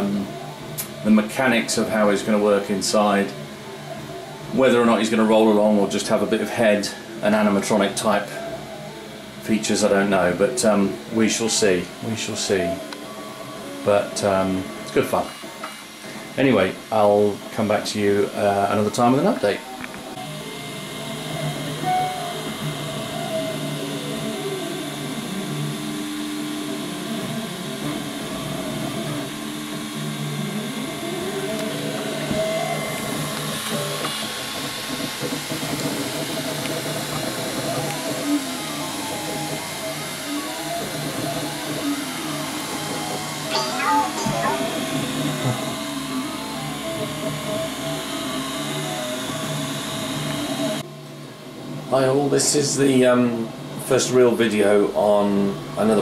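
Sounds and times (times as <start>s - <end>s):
stepper motors whining: 0.0s - 50.8s
cooling fans humming: 0.0s - 56.0s.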